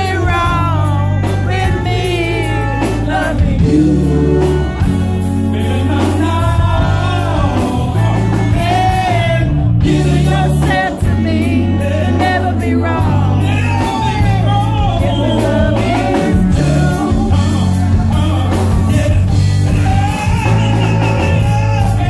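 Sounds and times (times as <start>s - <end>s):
live band playing: 0.0s - 22.0s
man singing: 0.0s - 22.0s.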